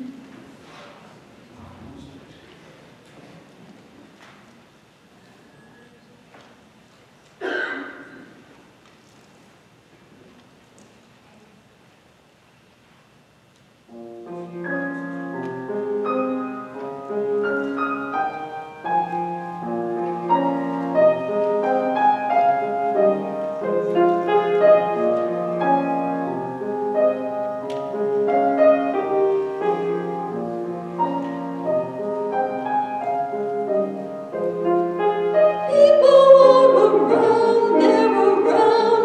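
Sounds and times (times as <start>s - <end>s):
slow piano chords and melody: 13.9s - 39.0s.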